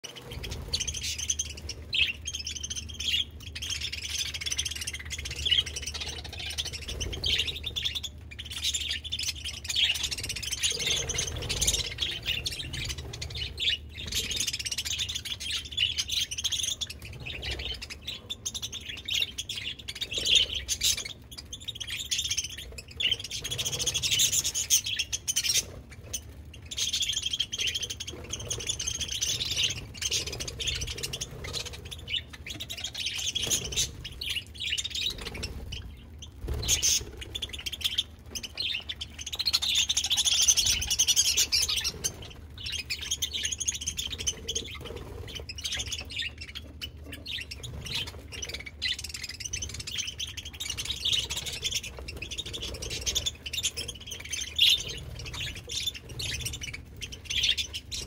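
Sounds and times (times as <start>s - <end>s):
budgerigars chirping and chattering: 0.0s - 58.0s.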